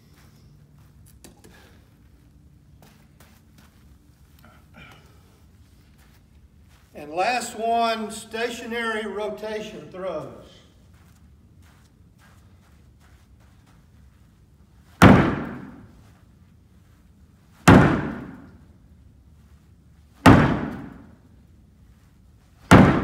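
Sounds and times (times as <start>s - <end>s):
ball slamming into plywood wall: 15.0s - 15.8s, 17.7s - 18.4s, 20.2s - 21.1s, 22.7s - 23.0s.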